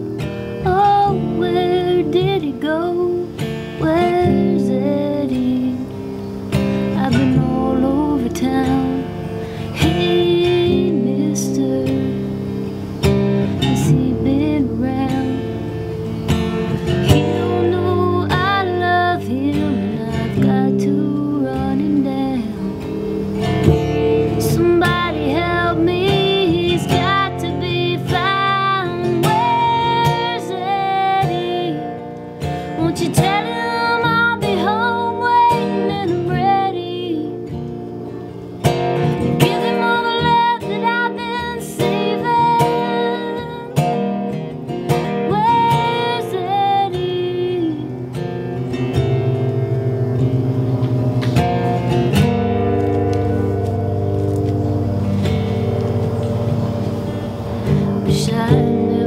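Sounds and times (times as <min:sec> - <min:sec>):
woman singing: 0:00.0 - 0:06.2, 0:06.8 - 0:15.9, 0:17.0 - 0:37.8, 0:38.8 - 0:48.9, 0:57.3 - 0:59.0
acoustic guitar strumming: 0:00.0 - 0:59.0.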